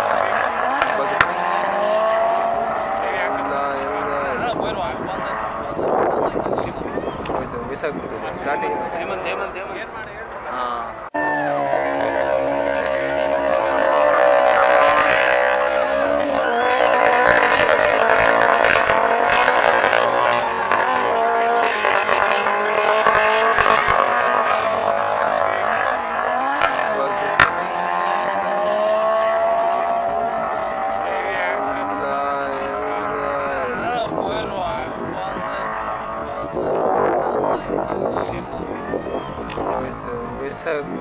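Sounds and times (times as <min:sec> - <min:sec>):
car engines revving: 0:00.0 - 0:41.0.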